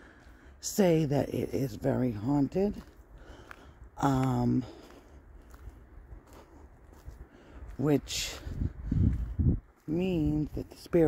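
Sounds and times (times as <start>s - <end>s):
low rumble: 5.0s - 10.8s.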